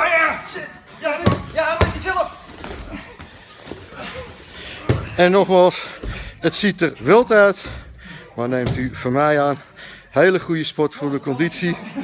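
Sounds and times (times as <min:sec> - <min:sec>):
wrestlers rustling on a mat: 0:00.9 - 0:07.8.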